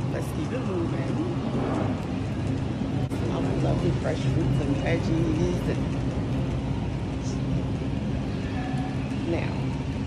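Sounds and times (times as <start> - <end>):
supermarket background rumble and hum: 0.0 - 10.0.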